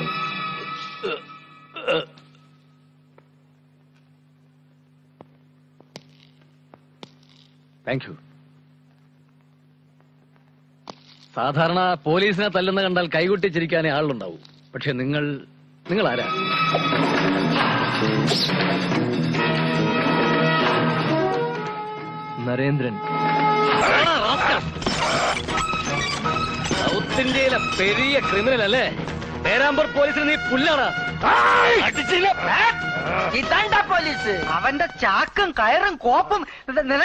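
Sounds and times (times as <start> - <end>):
low electrical hum: 0.0 - 37.0
film music: 16.0 - 35.2.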